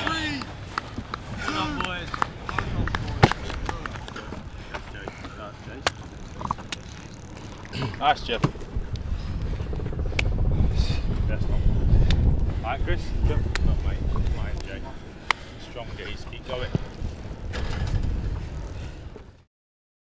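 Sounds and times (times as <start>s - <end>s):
low rumble: 0.0s - 19.5s.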